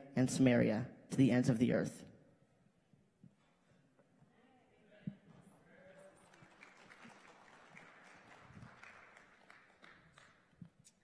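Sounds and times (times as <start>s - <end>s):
congregation applauding: 5.5s - 10.9s.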